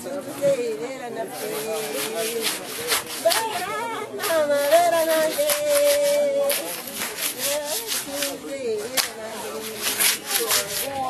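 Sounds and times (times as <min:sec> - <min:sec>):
scratchy rubbing noises: 0:00.0 - 0:11.0.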